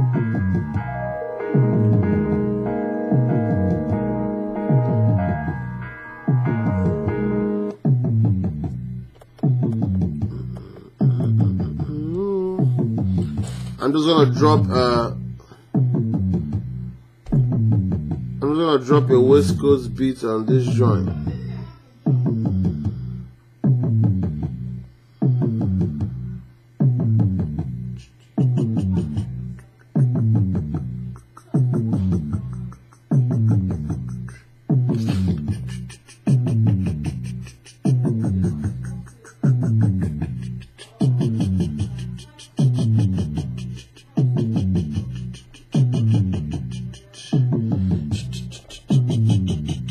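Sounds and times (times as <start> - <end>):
looped plucked melody: 0.0 - 13.4
melodic loop over bass line: 0.0 - 13.5, 14.2 - 18.4, 19.1 - 49.9.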